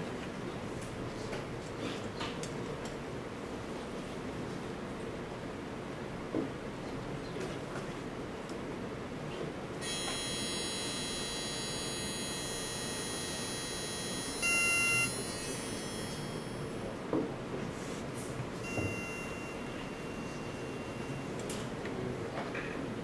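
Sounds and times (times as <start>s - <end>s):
short electronic beep: 9.8s - 16.9s, 18.6s - 21.4s
single high tone: 9.8s - 17.0s, 18.6s - 21.6s
cluster of steady high tones: 9.8s - 17.1s, 18.6s - 21.7s.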